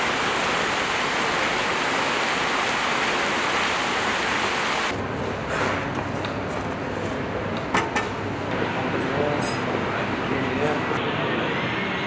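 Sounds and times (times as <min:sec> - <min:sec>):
fountain water splashing: 0:00.0 - 0:04.9.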